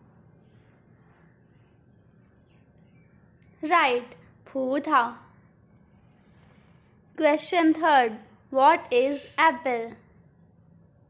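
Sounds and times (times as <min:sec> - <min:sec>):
faint steady background hum: 0:00.0 - 0:11.0.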